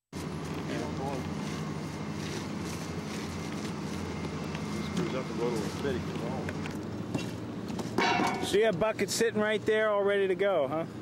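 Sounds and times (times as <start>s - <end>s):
outdoor background noise: 0.1s - 11.0s
low mechanical drone: 0.2s - 11.0s.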